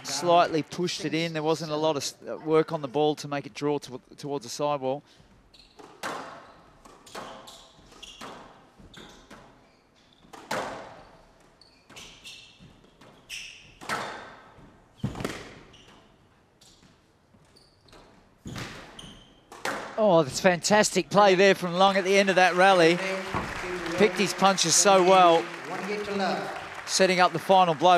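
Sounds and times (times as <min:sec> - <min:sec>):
shoes squeaking on court floor: 0:05.3 - 0:19.7
squash ball hits: 0:15.0 - 0:15.6.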